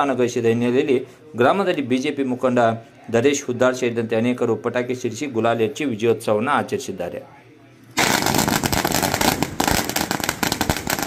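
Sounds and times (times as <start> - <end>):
firecrackers banging: 8.0 - 11.0.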